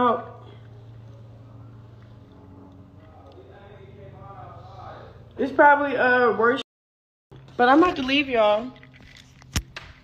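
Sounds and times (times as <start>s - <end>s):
steady low hum: 0.0s - 6.6s.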